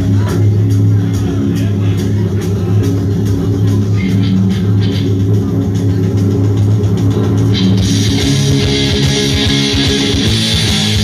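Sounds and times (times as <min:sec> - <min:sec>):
rock band playing: 0:00.0 - 0:11.0
bright guitar strum: 0:07.5 - 0:11.0.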